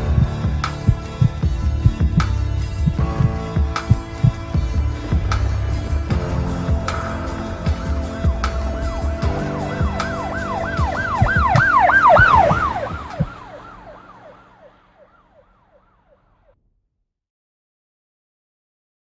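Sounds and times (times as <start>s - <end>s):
music with held notes and thuds: 0.0s - 13.9s
siren yelping: 8.8s - 16.2s.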